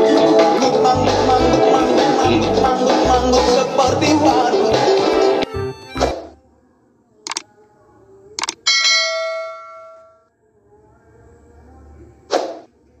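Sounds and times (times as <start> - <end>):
mouse clicks: 8.4 - 8.6
notification bell ding: 8.7 - 10.2.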